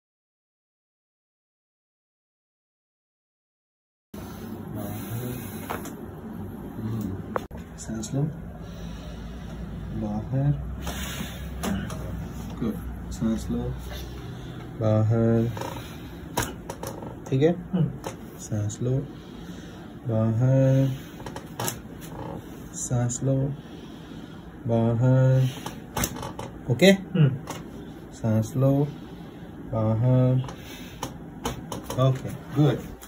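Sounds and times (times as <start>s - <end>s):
low room noise: 4.2s - 33.0s
neck joint cracking: 26.0s - 26.6s
person speaking: 31.8s - 33.0s.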